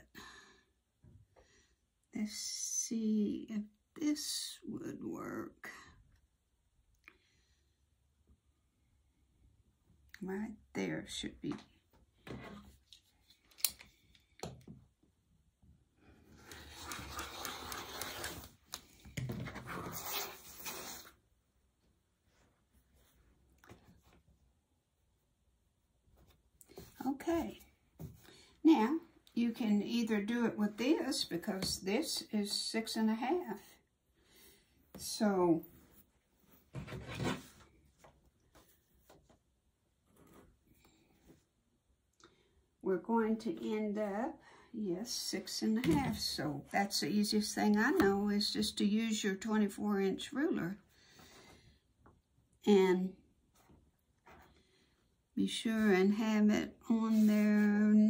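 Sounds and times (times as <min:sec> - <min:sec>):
faint rubbing and rustling: 0:16.1 - 0:21.3, 0:34.5 - 0:41.7
ruler sliding on fabric: 0:16.3 - 0:18.6.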